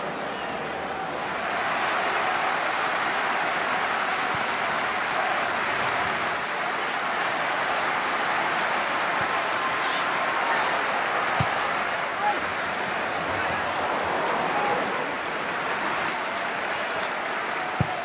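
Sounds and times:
stadium crowd applauding: 0.0 - 18.0.

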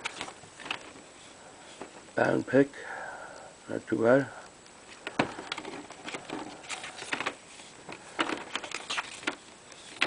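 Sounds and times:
cd cases and paper rustling: 0.0 - 2.4, 4.8 - 10.0.

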